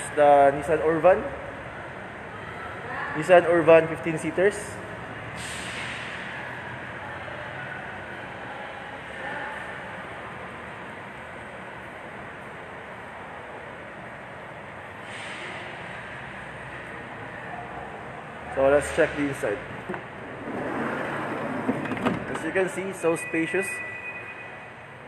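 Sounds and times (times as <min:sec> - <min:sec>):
showroom background hiss: 0:06.4 - 0:25.0.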